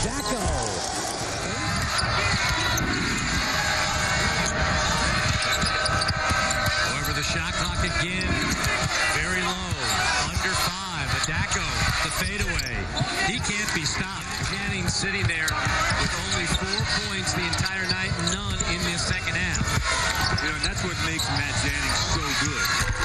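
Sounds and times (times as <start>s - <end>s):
crowd noise and voices: 0.0s - 23.0s
basketball bouncing on hardwood: 11.3s - 21.4s.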